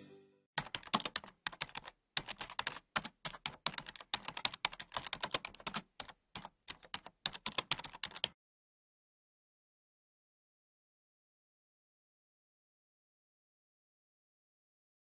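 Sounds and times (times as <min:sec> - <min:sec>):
computer keyboard typing: 0:00.6 - 0:08.4.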